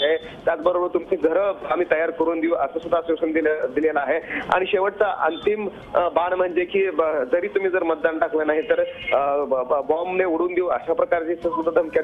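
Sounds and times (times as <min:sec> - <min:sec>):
man speaking over narrow-band line: 0:00.0 - 0:12.0.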